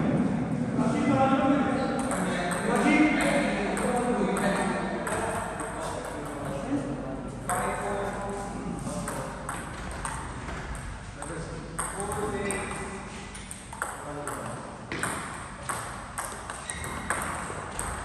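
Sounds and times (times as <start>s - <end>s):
table tennis ball ticking: 9.1s - 18.0s.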